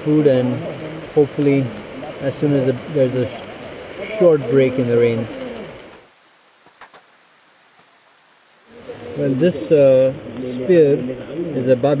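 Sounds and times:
water dripping off roof: 0.0 - 10.6
soft steady rain: 0.0 - 12.0.

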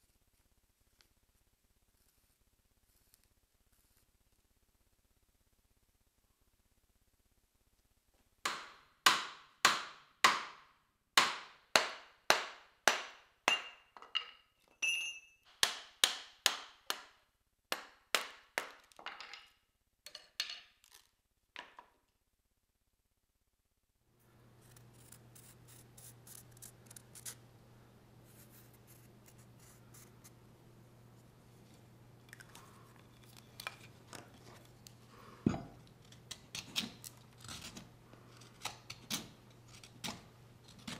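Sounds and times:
short high ring: 14.8 - 15.4.

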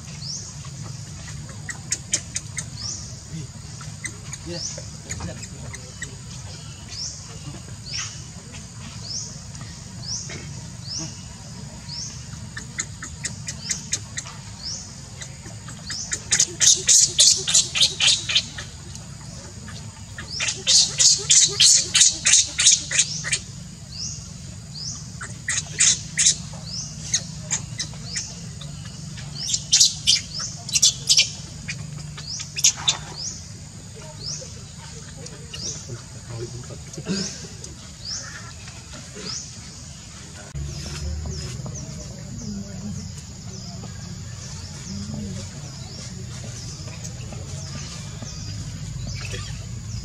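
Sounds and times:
baby monkey screaming: 20.2 - 23.5, 25.2 - 26.4.

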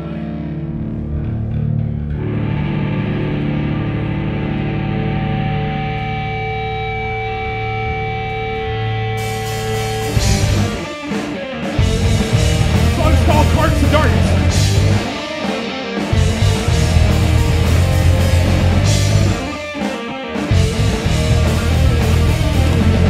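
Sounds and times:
distorted electric guitars and bass: 0.0 - 23.0
full band with drums: 9.2 - 23.0.

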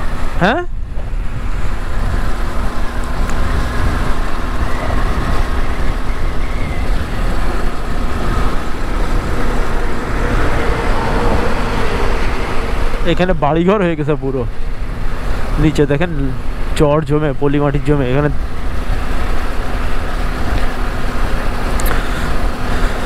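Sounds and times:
faint motorcycle engine hum: 0.0 - 23.0
road noise: 0.0 - 23.0
wind rush over microphone: 0.0 - 23.0.

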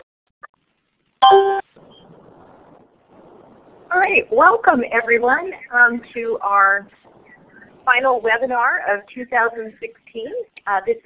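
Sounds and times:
faint microphone hiss: 0.5 - 11.0
woman speaking: 3.9 - 11.0.

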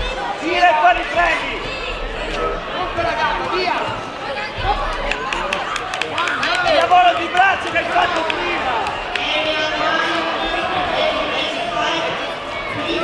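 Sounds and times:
spectators talking and calling out: 0.0 - 13.0.

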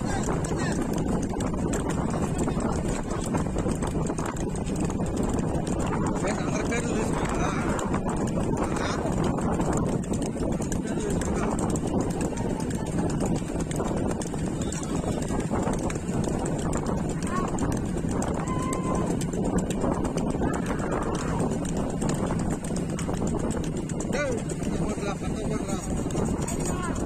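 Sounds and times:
hooves clattering on pavement: 0.0 - 27.0
voices shouting: 18.3 - 19.3.

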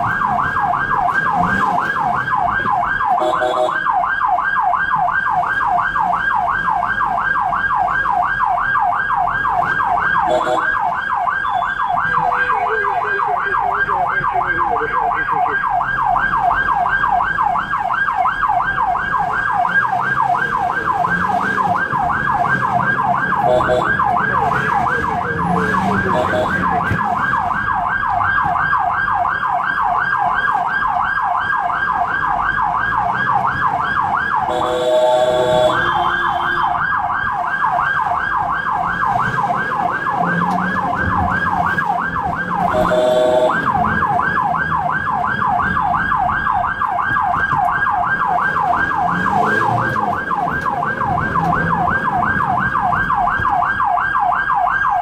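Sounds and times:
ambulance siren yelping: 0.0 - 55.0.

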